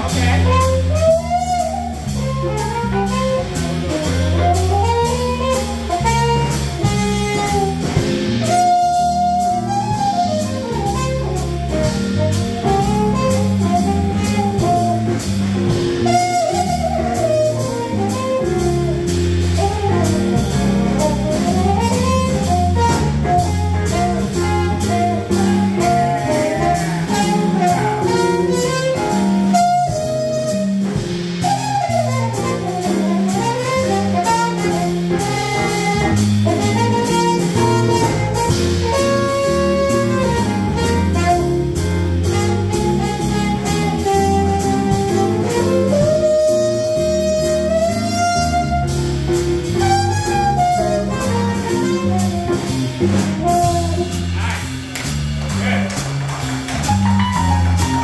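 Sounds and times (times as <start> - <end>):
electric keyboard: 0.0 - 54.5, 55.6 - 58.0
drum kit: 0.0 - 58.0
horn melody: 0.0 - 58.0
walking electric bass: 0.0 - 58.0.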